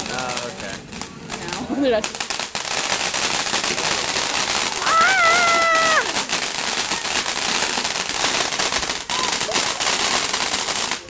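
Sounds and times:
firework crackling hiss: 0.0s - 11.0s
person shouting: 4.8s - 6.1s.

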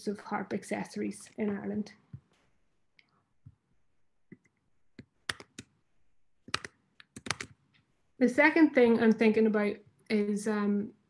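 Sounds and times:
keyboard and mouse clicks: 4.3s - 5.8s, 6.4s - 7.9s.

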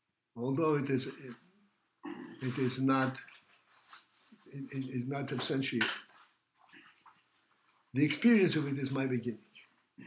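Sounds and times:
man speaking: 0.4s - 1.5s, 2.3s - 3.4s, 4.4s - 6.1s, 7.9s - 9.7s.

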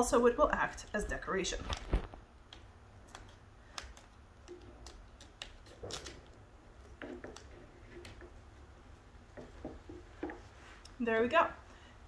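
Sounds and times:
tape crinkling with small clicks: 0.8s - 8.5s.

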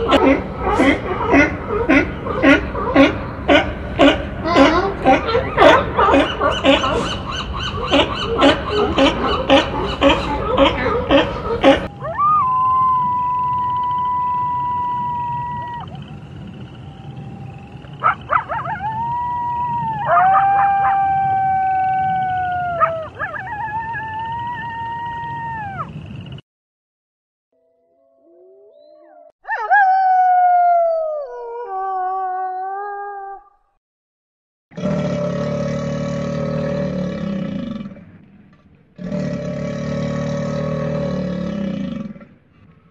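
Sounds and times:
wolves howling: 5.2s - 26.0s, 28.3s - 33.5s.

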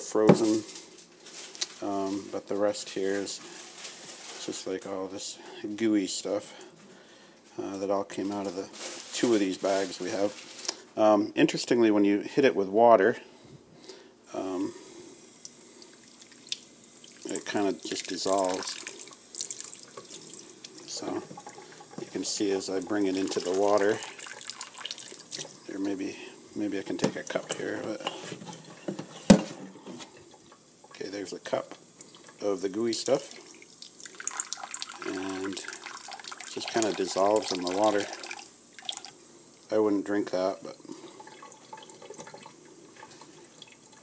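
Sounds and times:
tap water trickling: 15.4s - 26.0s, 31.7s - 39.2s, 40.9s - 44.0s
water splashes and drips: 15.4s - 26.0s, 30.0s - 39.2s.

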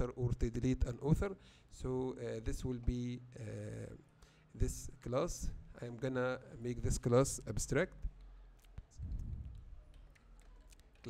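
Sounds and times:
brief low hum: 9.0s - 9.9s.

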